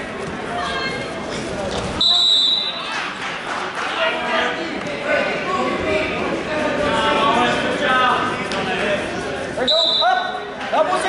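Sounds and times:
shouts and chatter echoing: 0:00.0 - 0:11.0.

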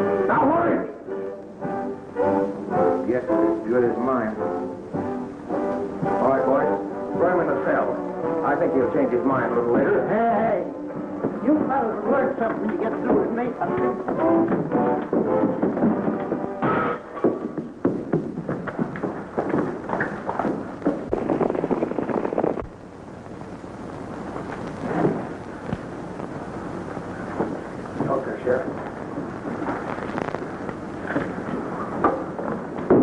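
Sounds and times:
hurried footsteps: 0:10.8 - 0:22.7
shuffling: 0:10.9 - 0:22.7, 0:24.4 - 0:32.7.

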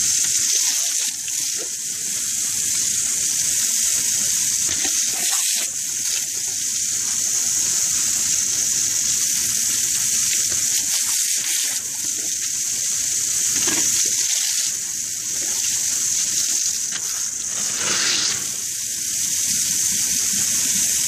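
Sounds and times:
hose spraying water on concrete: 0:00.0 - 0:21.0.

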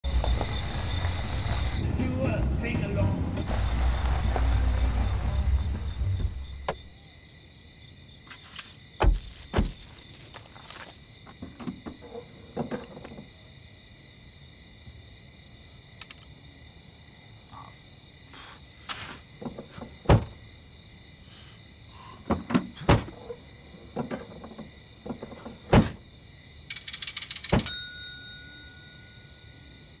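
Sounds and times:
car driving over dirt track: 0:00.1 - 0:06.8
thumps and knocks at car trunk: 0:09.0 - 0:09.9, 0:19.4 - 0:20.4, 0:22.2 - 0:23.3, 0:24.0 - 0:26.0
trunk lid slamming: 0:25.1 - 0:26.0
rattling clicks: 0:26.7 - 0:27.8
ringing tone: 0:27.6 - 0:29.8.

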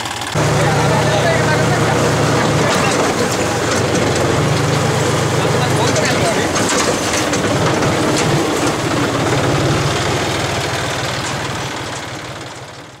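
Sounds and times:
boat engine chugging: 0:00.0 - 0:13.0.

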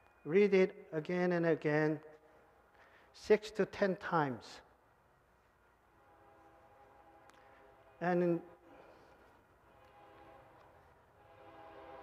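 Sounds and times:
distant train horn chord: 0:05.8 - 0:12.0.

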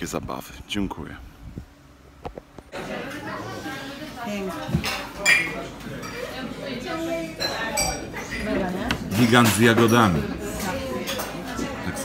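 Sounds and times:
crockery and cutlery clinking: 0:04.6 - 0:06.5, 0:07.3 - 0:11.9.

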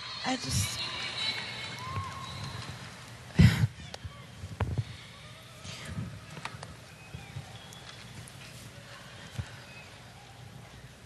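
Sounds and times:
low hum of large venue: 0:00.0 - 0:11.0.

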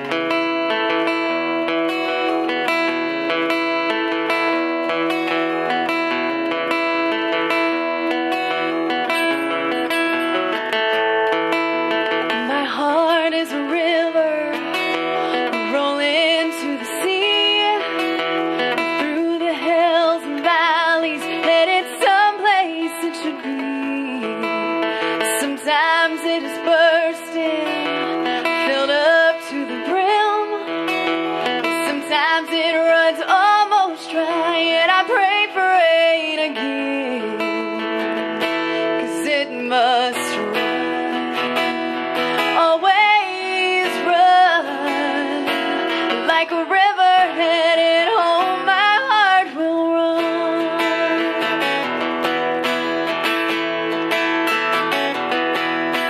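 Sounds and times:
acoustic guitar playing: 0:00.0 - 0:56.0
woman singing: 0:00.0 - 0:56.0.

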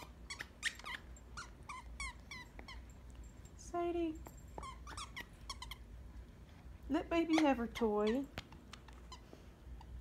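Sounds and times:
dog chewing plush toy: 0:00.0 - 0:02.9, 0:04.5 - 0:06.5
toy squeaking: 0:00.0 - 0:02.9, 0:04.6 - 0:05.9.

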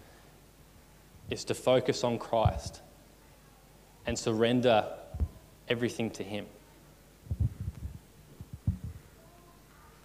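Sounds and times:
microphone handling thumps: 0:02.4 - 0:02.8, 0:05.1 - 0:05.4, 0:07.3 - 0:09.1.

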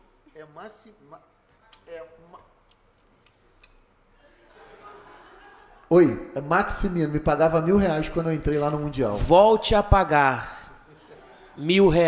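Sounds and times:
person speaking: 0:05.9 - 0:10.8.

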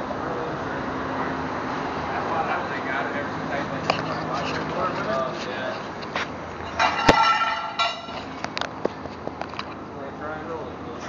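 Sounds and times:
faint voices: 0:00.0 - 0:06.0
knocks and clanks on a car: 0:06.1 - 0:09.7
ringing metallic tone: 0:06.7 - 0:08.4.

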